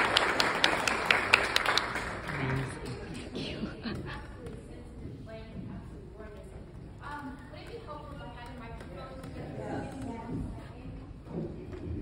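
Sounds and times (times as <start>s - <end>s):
indistinct voices in a hall: 0.0s - 12.0s.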